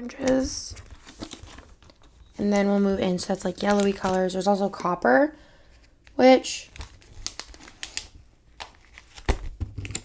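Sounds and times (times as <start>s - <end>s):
plastic page sleeves rustling: 0.1s - 5.0s, 5.8s - 10.0s.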